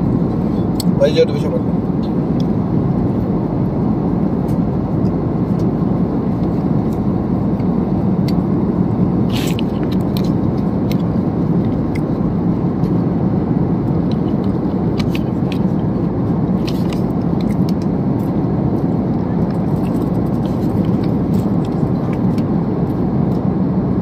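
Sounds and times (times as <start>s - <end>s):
airliner cabin drone: 0.0s - 24.0s.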